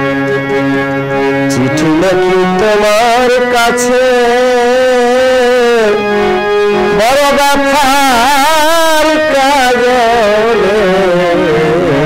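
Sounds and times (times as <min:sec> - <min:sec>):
harmonium drone: 0:00.0 - 0:12.0.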